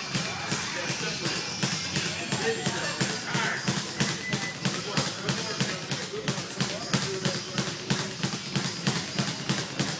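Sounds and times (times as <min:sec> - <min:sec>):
faint voices: 0:00.0 - 0:09.9
rhythmic thumping: 0:00.0 - 0:09.9.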